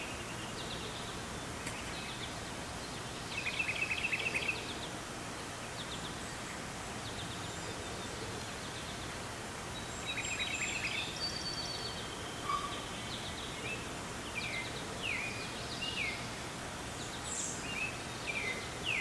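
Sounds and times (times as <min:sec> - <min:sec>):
birds chirping: 0:00.0 - 0:19.0
outdoor background noise: 0:00.0 - 0:19.0
short down-slurred bird calls: 0:10.1 - 0:13.5.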